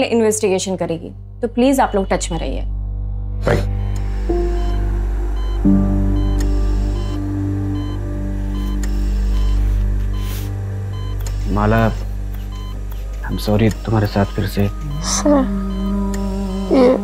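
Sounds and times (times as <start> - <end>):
dramatic drone music: 0.0 - 17.0.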